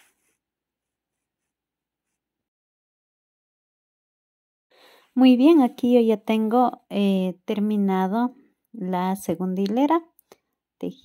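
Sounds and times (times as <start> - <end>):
soft scratches of cord handling: 0.0 - 2.3.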